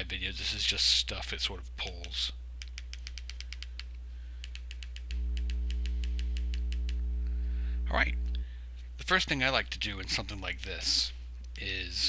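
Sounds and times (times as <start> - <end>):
electrical mains hum: 0.0 - 12.0
rapid light clicks: 1.9 - 7.1.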